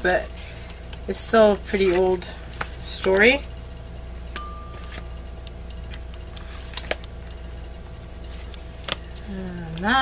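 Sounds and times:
low electrical hum: 0.0 - 10.0
books being handled clicks: 8.5 - 9.1.

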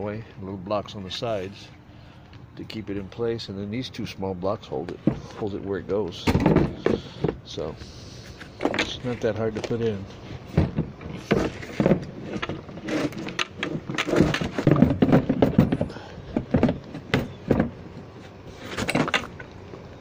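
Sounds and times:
knocks thuds and scrapes: 4.8 - 19.5.

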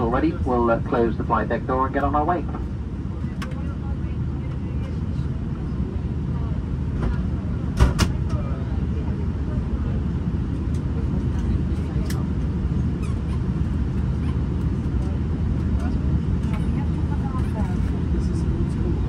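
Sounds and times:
aircraft cabin rumble: 0.0 - 19.0.

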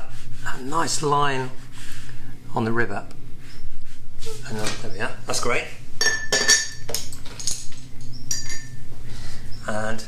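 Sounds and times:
paintbrush clinking against water pot: 8.1 - 8.8.

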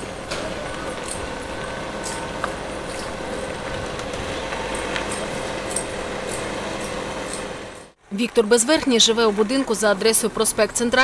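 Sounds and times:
distant city traffic hum: 0.0 - 11.0.

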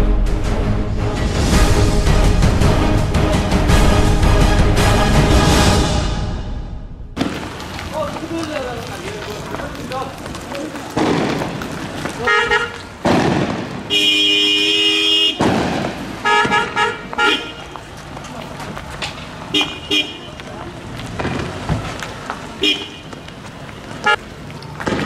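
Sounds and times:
vehicle horn honking: 12.2 - 12.8, 13.9 - 15.5, 16.2 - 17.8, 19.5 - 20.4, 22.6 - 23.1.

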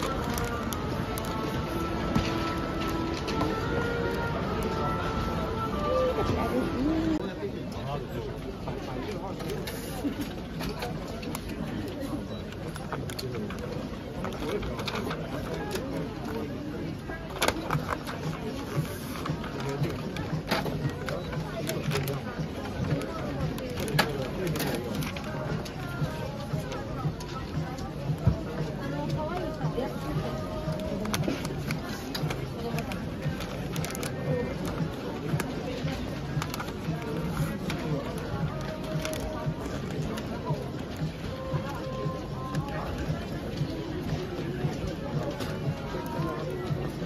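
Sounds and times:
background music: 0.0 - 7.6, 12.5 - 47.0.

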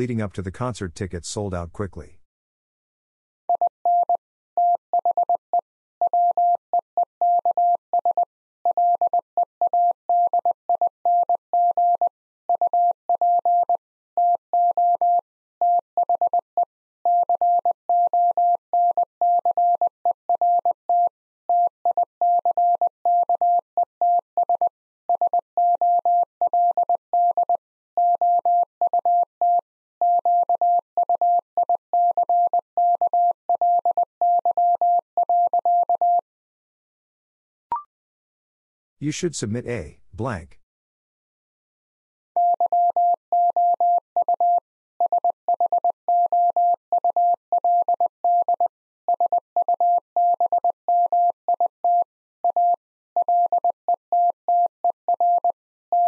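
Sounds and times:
morse code tone: 42.4 - 56.0.

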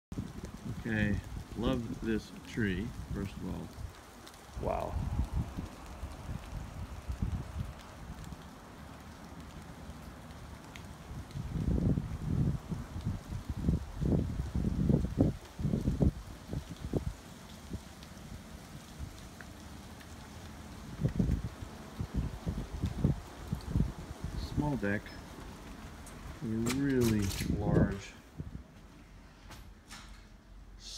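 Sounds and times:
wind buffeting microphone: 0.1 - 2.1, 2.7 - 8.5, 10.8 - 19.3, 20.4 - 28.9.

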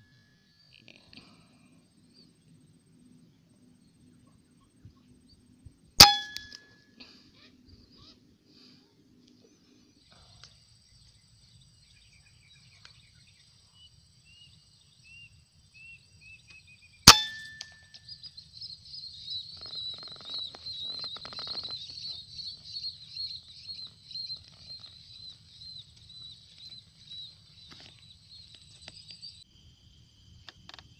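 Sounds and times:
bird chirps: 9.4 - 29.4.

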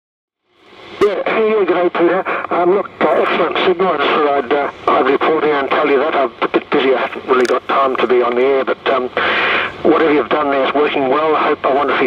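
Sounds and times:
radio receiver hiss: 0.5 - 12.0
man's voice over radio speaker: 1.0 - 12.0
radio click: 4.4 - 9.0.

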